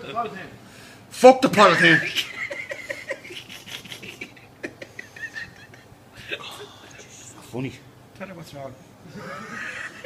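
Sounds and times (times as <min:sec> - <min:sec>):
quiet broken laughter: 0:02.0 - 0:07.4, 0:09.0 - 0:10.0.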